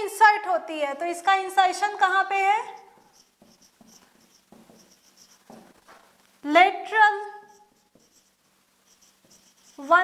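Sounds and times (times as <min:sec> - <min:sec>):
marker squeaking on whiteboard: 0:02.0 - 0:06.2, 0:07.2 - 0:10.0.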